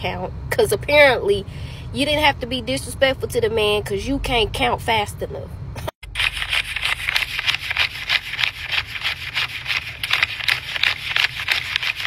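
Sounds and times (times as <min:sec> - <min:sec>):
banknotes flicked while counting: 0:06.2 - 0:12.0.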